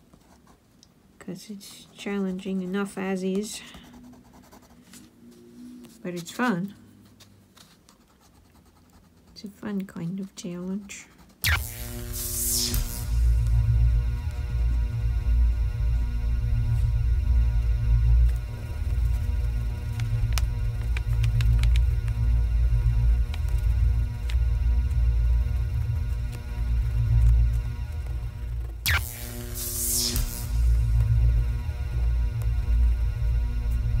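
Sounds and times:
loud uneven low hum: 11.4s - 34.0s
steady electrical tones: 11.4s - 34.0s.

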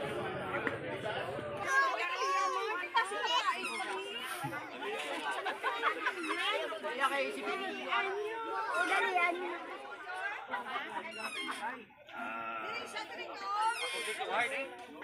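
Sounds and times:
group of people chattering: 0.0s - 15.0s.

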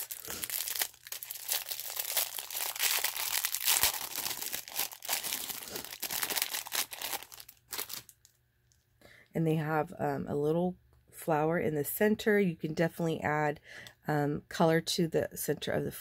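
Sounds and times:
plastic bag crinkling: 0.0s - 8.3s.

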